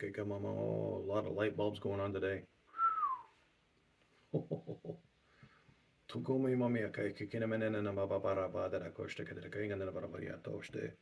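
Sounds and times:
whistled falling note: 2.7 - 3.4
man chuckling: 4.3 - 5.2.

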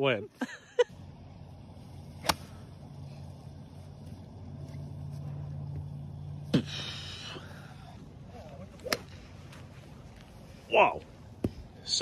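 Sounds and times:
low steady hum: 0.0 - 12.0
golf club striking ball: 2.2 - 2.8.

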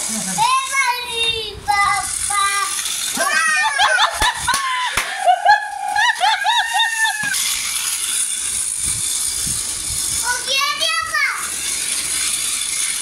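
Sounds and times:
toy train running on track: 0.0 - 13.0.

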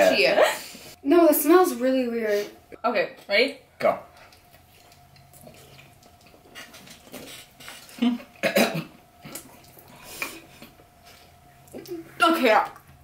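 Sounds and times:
people chewing banana: 4.1 - 8.5, 9.1 - 12.1
throaty mouth noises: 4.3 - 8.6.

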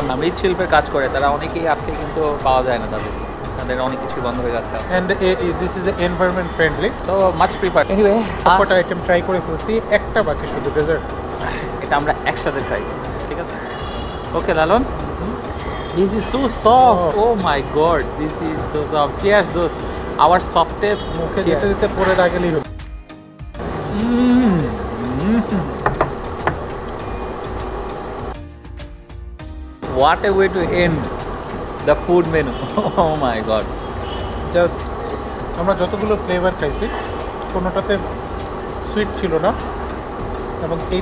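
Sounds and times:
men talking: 0.0 - 22.7, 23.9 - 26.0, 29.8 - 31.2, 31.8 - 38.2, 38.8 - 39.7, 40.6 - 41.0
background music: 0.0 - 41.0
man humming while chewing: 15.2 - 15.4, 23.8 - 25.8.

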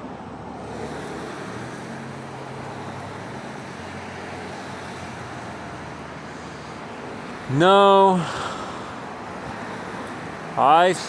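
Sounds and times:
rushing outdoor background noise: 0.0 - 11.0.

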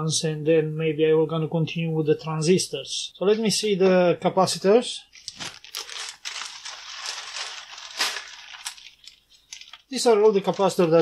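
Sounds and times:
plastic bag crinkling: 5.2 - 11.0.

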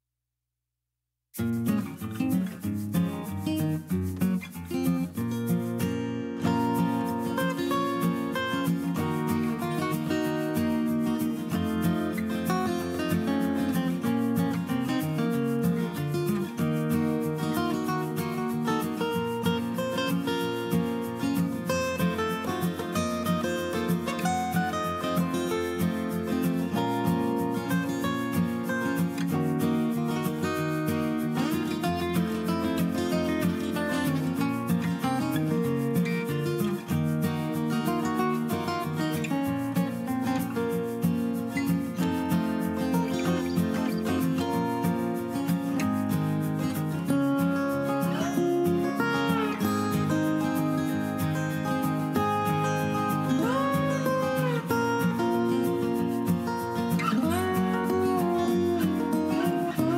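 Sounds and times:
acoustic guitar music: 1.4 - 59.9.

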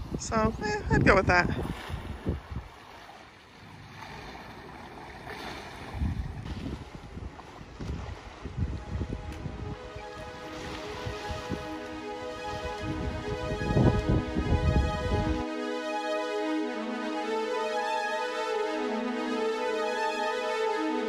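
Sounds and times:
wind buffeting microphone: 0.0 - 3.0, 3.8 - 15.4
background music: 8.7 - 21.0.

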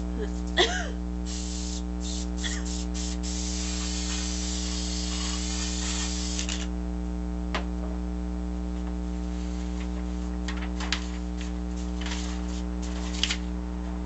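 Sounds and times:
mains hum: 0.0 - 14.0
aerosol spray can hissing: 1.2 - 6.7.

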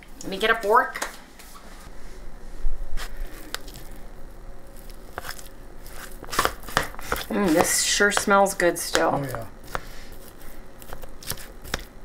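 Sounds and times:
fork squishing and scraping food: 3.0 - 4.0, 4.7 - 8.3, 9.0 - 12.0.

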